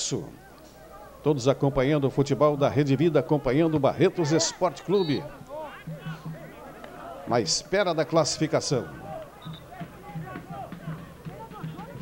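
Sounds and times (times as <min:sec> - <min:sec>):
distant crowd voices: 0:00.0 - 0:12.0.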